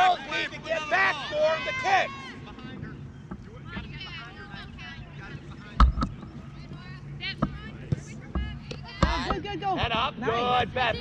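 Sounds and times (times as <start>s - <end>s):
distant voices calling out: 0.0s - 11.0s.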